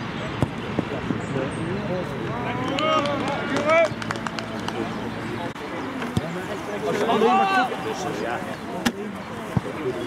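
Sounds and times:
players shouting: 2.2 - 5.2, 6.0 - 10.0.

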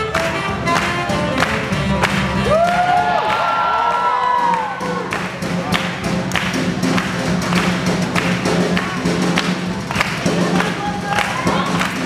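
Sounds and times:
swing band playing: 0.0 - 12.0.

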